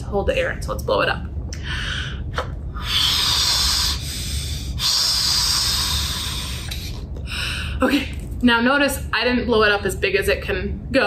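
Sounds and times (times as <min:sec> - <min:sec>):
blowing through a drinking straw: 0:02.8 - 0:07.0.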